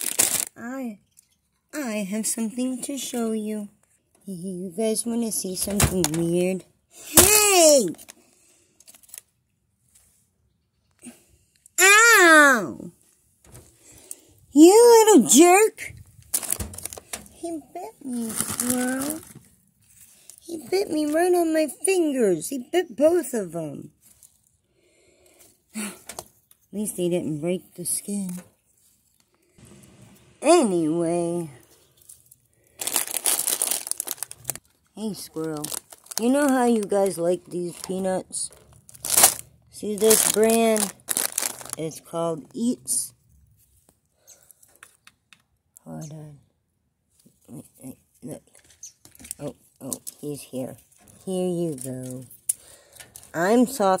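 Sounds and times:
plastic bag crinkling: 0.0 - 0.6, 8.8 - 9.3, 15.8 - 21.2, 31.9 - 42.1.

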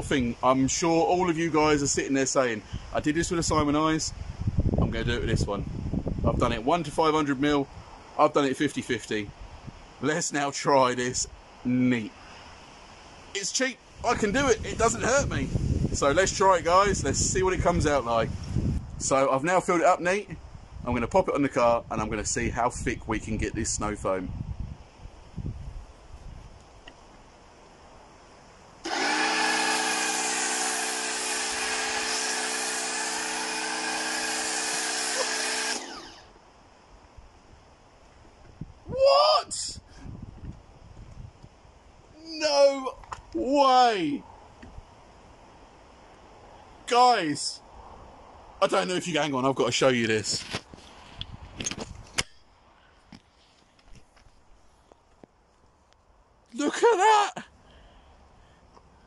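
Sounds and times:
pressure washer whine: 28.8 - 36.3
camera handling rumble: 50.3 - 52.4.

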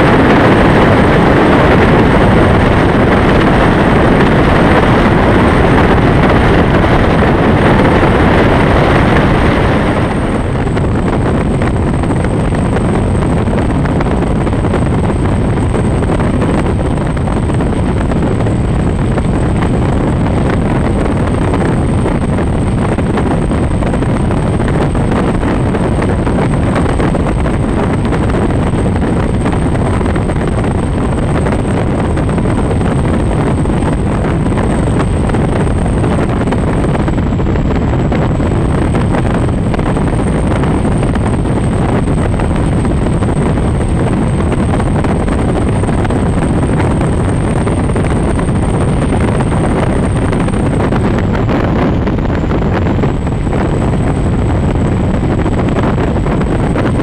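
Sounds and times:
wind on microphone: 0.0 - 57.0.

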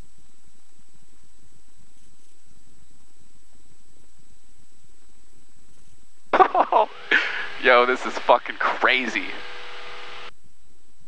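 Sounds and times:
man talking: 6.4 - 9.4
muffled aircraft engine drone: 6.4 - 10.3.

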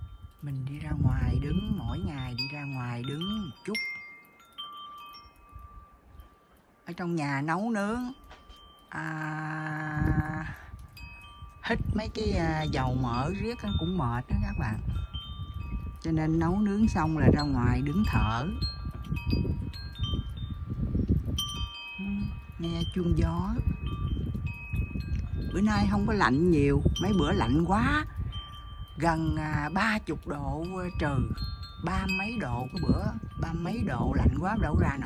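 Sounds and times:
wind chimes ringing: 0.0 - 35.0.

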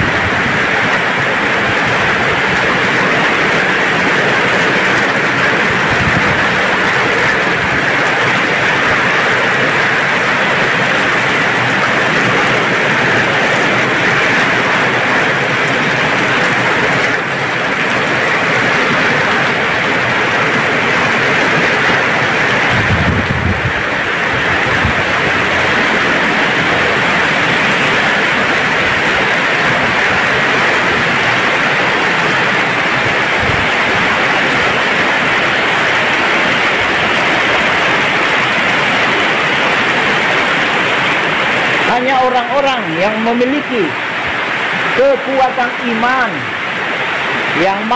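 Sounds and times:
heavy rain pouring: 0.0 - 47.9.

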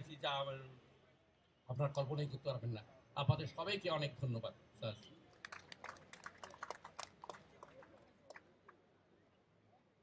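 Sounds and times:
sparse applause: 5.4 - 8.4.

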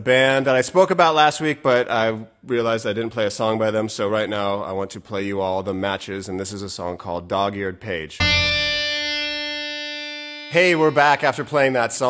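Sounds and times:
single ringing musical note: 8.2 - 11.7.

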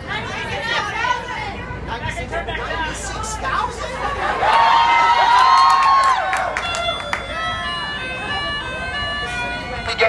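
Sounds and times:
crowd chatter: 0.0 - 10.0
melodica long held notes: 6.0 - 10.0.

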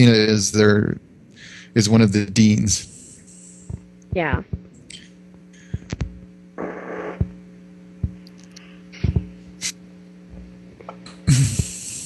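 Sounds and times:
electrical hum: 0.0 - 12.0
burst of hiss: 2.8 - 3.7, 11.3 - 12.0.

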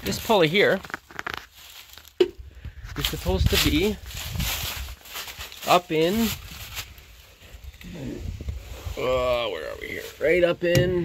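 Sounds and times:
rustling handling noise: 0.0 - 7.8.

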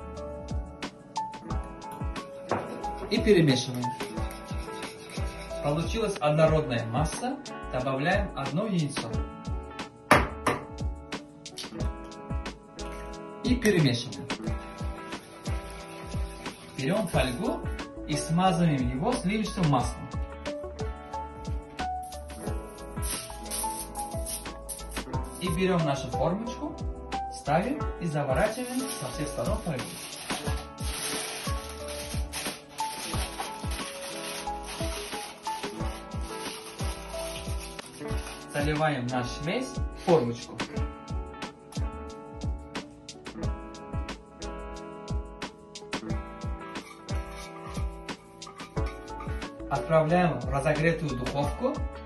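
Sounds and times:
background music with steady beat: 0.0 - 52.0
sharp knock: 10.1 - 10.7
aluminium foil crinkling: 23.0 - 25.4, 28.4 - 38.7.

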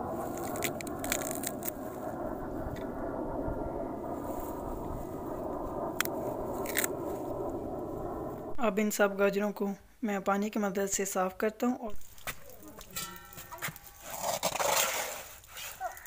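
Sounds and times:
foliage rustling: 0.0 - 2.2, 4.2 - 8.5, 11.9 - 16.0
crisp snaps and clicks: 0.3 - 1.8, 6.0 - 7.0.

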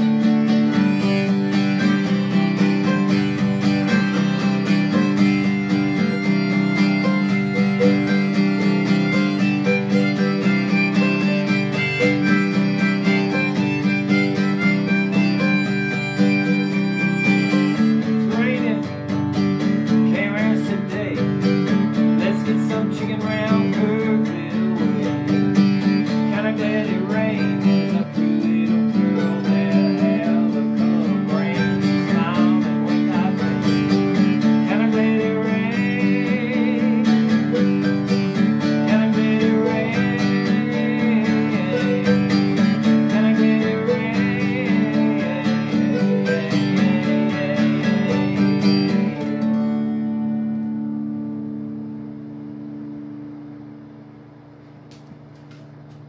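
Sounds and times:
acoustic guitar duet: 0.0 - 53.6.

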